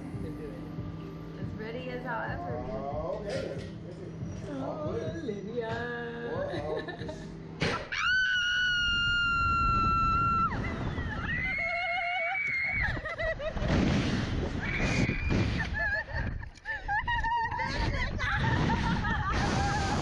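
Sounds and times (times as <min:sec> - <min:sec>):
women screaming: 0:07.9 - 0:13.2
wind noise on microphone: 0:08.8 - 0:20.0.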